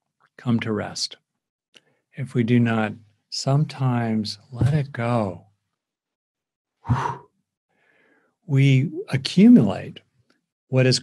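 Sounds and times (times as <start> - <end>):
man breathing: 6.8 - 8.4.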